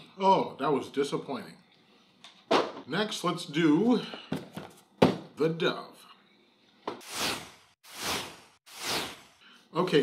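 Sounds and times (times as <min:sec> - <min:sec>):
whoosh transition effects: 0:07.0 - 0:09.4.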